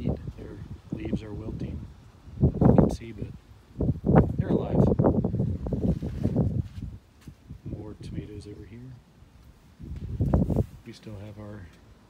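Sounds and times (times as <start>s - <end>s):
wind buffeting microphone: 0.0s - 11.6s.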